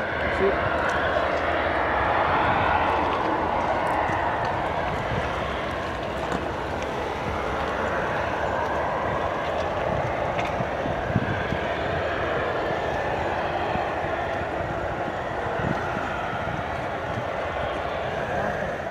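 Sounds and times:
jet engines idling: 0.0 - 18.9.

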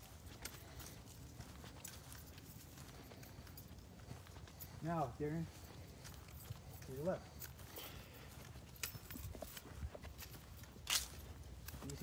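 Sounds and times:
footsteps on stubble and grass: 0.0 - 12.0.

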